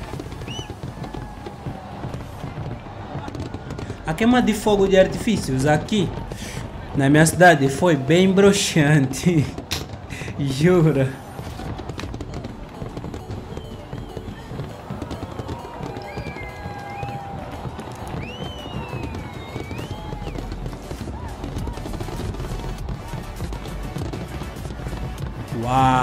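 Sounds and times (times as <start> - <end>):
crowd voices: 0.0 - 25.8
fireworks crackling and popping: 0.0 - 26.0
music: 0.0 - 26.0
whistling fireworks: 0.0 - 26.0.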